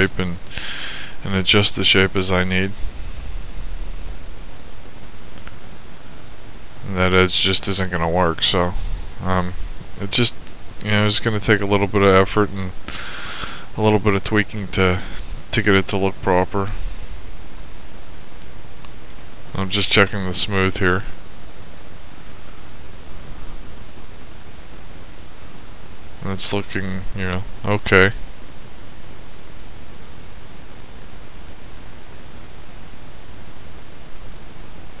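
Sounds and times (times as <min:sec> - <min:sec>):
microphone hiss: 0:00.0 - 0:35.0.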